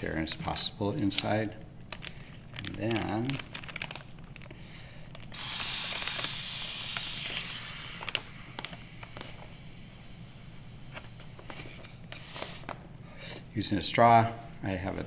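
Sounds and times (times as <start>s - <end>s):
plastic bag clicks: 1.9s - 4.5s, 5.1s - 7.1s.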